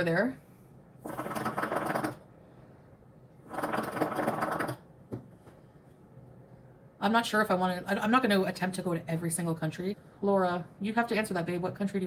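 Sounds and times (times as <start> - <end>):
water bubbling in hookah: 3.5 - 4.8.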